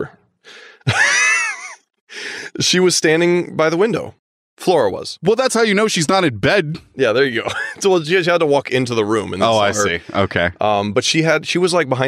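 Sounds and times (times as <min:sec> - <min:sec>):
person breathing: 0:00.4 - 0:00.9, 0:02.1 - 0:02.6
person's wordless high vocal: 0:09.4 - 0:10.5.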